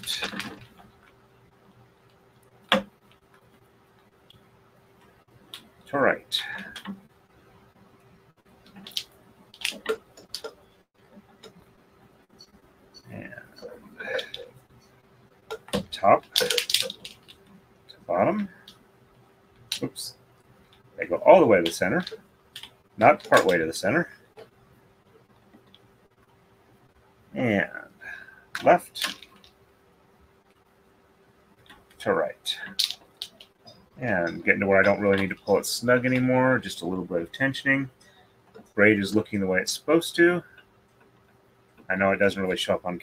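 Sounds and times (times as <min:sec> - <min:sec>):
faint steady hum: 0:00.0 - 0:43.0
bobbins clicking together: 0:08.6 - 0:10.6, 0:15.5 - 0:17.5, 0:32.6 - 0:33.8.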